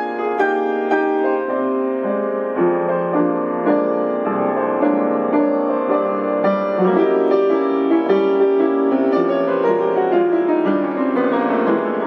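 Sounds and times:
minimalist piano improvisation: 0:00.0 - 0:12.0.

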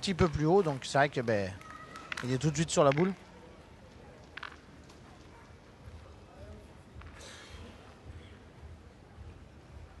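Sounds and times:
sports hall ambience: 0:00.0 - 0:10.0.

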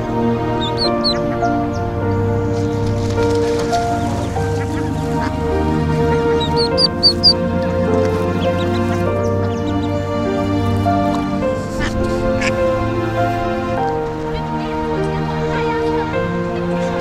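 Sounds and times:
soft background music: 0:00.0 - 0:17.0
duckling peeping: 0:00.5 - 0:12.6.

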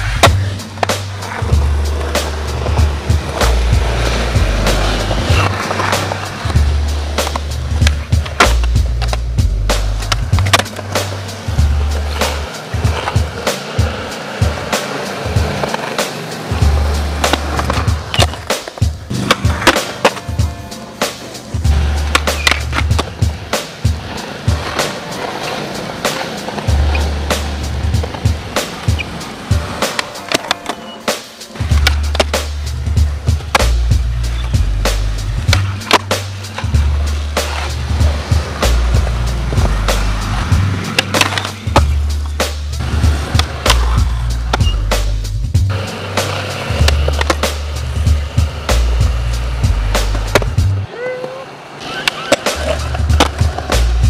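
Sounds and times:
skateboard pops and landings: 0:00.0 - 0:01.4, 0:07.2 - 0:09.2, 0:09.8 - 0:11.1, 0:17.2 - 0:20.3, 0:22.1 - 0:23.7, 0:40.9 - 0:41.9, 0:51.8 - 0:54.0
music with heavy bass: 0:00.0 - 0:30.1, 0:31.3 - 0:50.9, 0:52.5 - 0:54.0
skateboard wheels rolling on concrete: 0:00.0 - 0:54.0.

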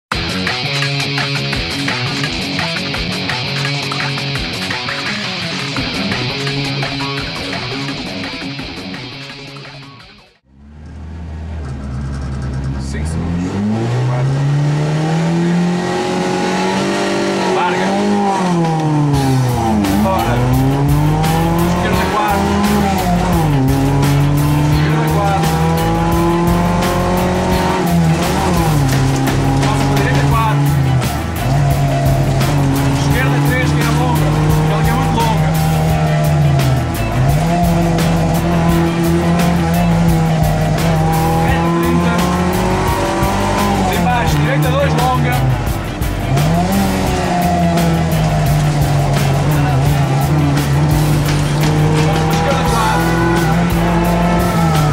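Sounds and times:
car engine revving through gears: 0:10.4 - 0:54.9.

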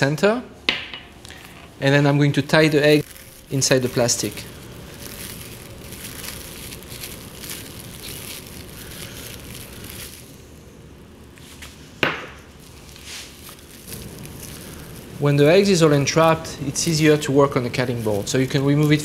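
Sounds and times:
cling film crinkling: 0:02.5 - 0:11.1, 0:12.6 - 0:19.0.

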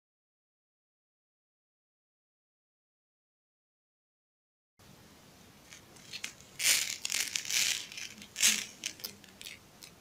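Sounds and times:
plastic sheet crinkling: 0:05.7 - 0:09.9.

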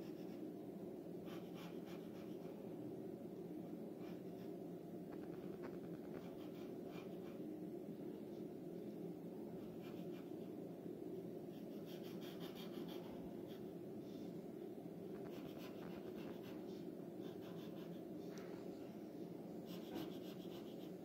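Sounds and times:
steady low hum: 0:00.0 - 0:21.0
pencil scratching on paper: 0:05.3 - 0:07.4, 0:11.6 - 0:13.6, 0:15.2 - 0:18.0, 0:19.7 - 0:21.0.

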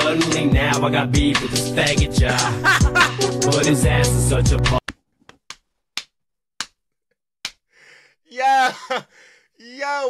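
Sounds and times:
man laughing hard: 0:02.2 - 0:03.3, 0:08.3 - 0:09.2
hand slaps: 0:04.9 - 0:06.8, 0:07.4 - 0:07.6.

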